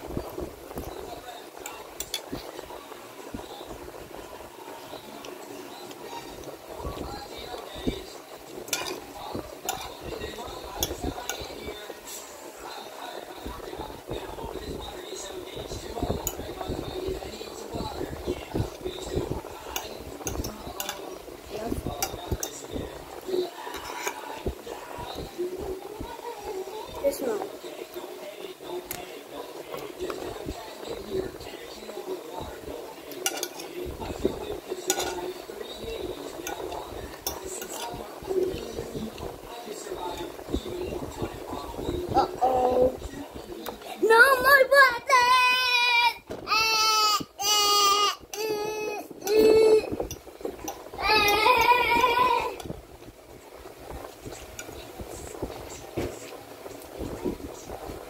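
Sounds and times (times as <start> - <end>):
metal fork clinking on a plate: 8.7 - 9.0, 9.6 - 10.0, 19.7 - 21.1, 33.1 - 33.8, 34.8 - 35.4, 36.4 - 38.0.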